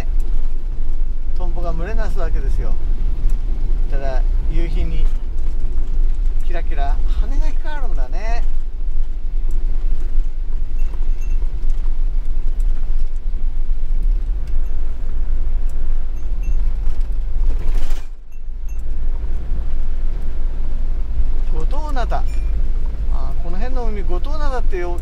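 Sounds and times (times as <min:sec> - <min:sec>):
van engine and tyres on wet road: 0:00.0 - 0:25.0.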